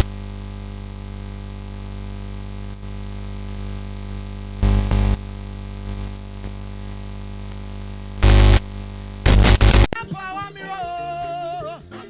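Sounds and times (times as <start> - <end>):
electronic drone of held tones: 0.0 - 10.0
harsh burst of noise: 0.0 - 10.0.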